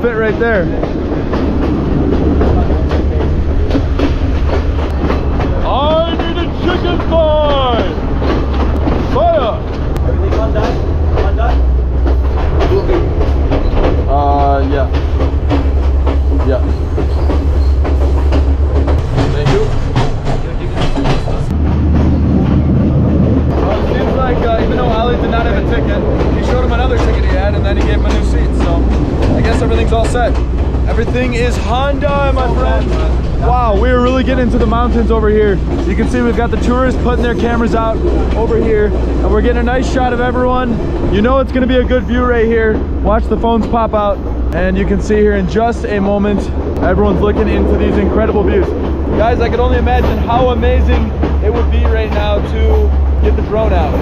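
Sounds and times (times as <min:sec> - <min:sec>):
train low rumble: 0:00.0 - 0:54.0
wheels clacking over rail joints: 0:00.0 - 0:54.0.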